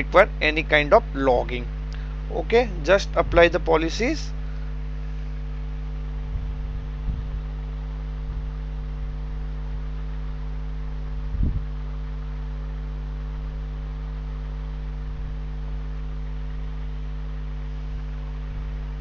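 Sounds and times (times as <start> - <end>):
electrical hum: 0.0 - 19.0.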